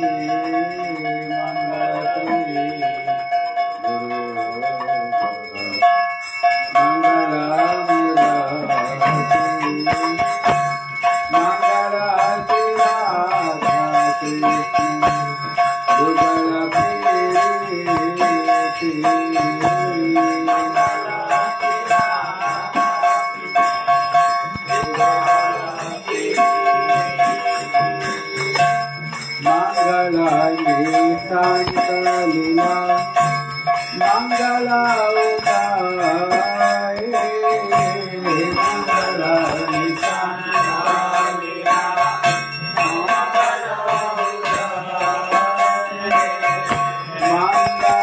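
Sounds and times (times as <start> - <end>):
bells ringing rapidly: 0.0 - 48.0
voices singing: 6.7 - 48.0.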